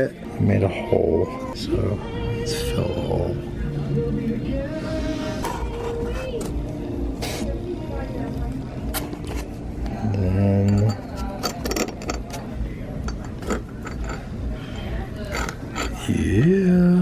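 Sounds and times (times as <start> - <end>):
person humming: 16.1 - 17.0.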